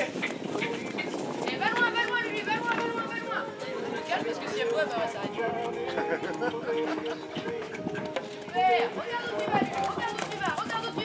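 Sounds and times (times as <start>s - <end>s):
hoofbeats on sand: 0.0s - 5.8s, 6.6s - 11.0s
people talking: 1.4s - 7.8s, 8.5s - 11.0s.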